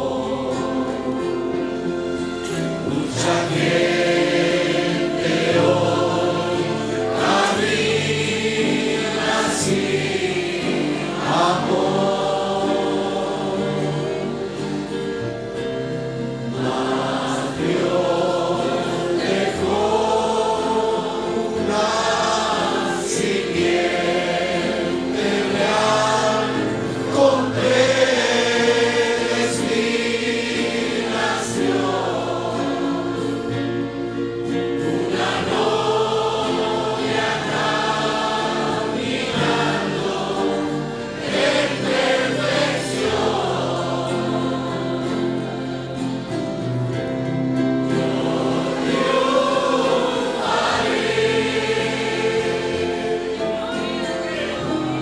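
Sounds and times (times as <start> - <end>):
congregation singing: 0.0 - 55.0.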